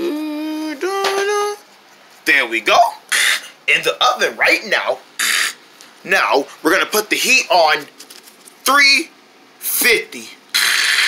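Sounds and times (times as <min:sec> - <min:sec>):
person humming: 0:00.0 - 0:01.6.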